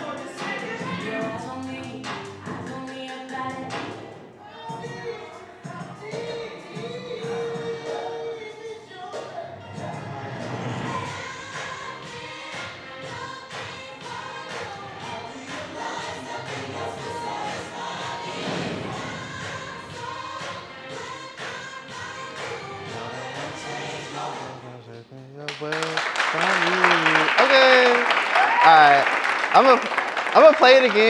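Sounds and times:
applause: 0:25.5 - 0:31.0.

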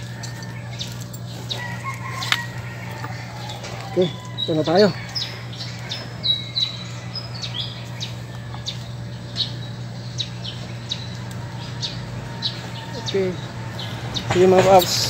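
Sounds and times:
small birds chirping: 0:00.0 - 0:15.0
steady low hum: 0:00.0 - 0:15.0.

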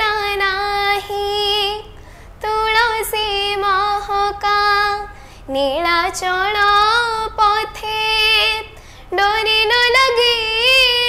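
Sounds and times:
girl singing unaccompanied: 0:00.0 - 0:11.0.

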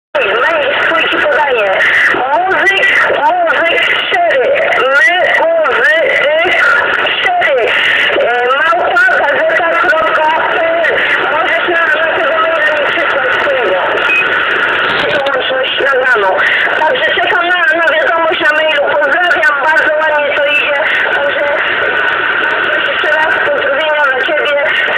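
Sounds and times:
radio static hiss: 0:00.2 - 0:24.9
tinny radio speech: 0:00.2 - 0:24.9.

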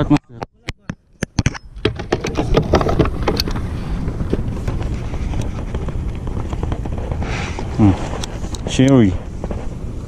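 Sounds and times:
wind buffeting microphone: 0:01.7 - 0:10.0.

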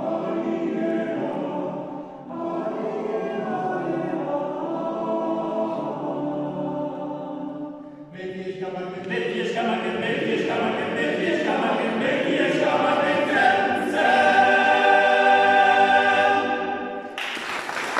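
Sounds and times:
a cappella choir singing: 0:00.0 - 0:17.2.

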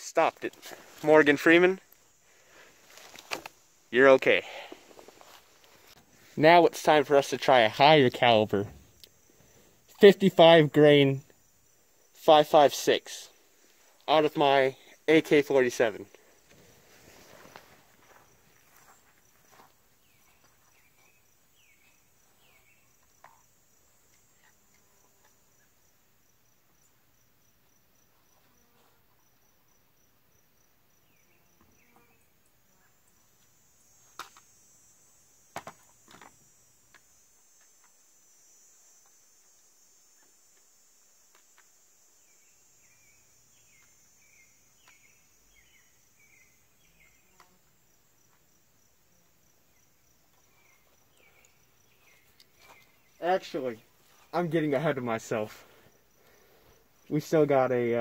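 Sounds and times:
insects chirping: 0:00.0 - 0:58.0.

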